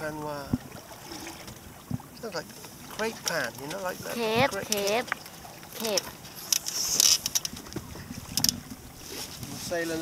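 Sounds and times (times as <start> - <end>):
wind and water hiss: 0.0 - 10.0
boat fittings clicking and knocking: 3.0 - 8.8.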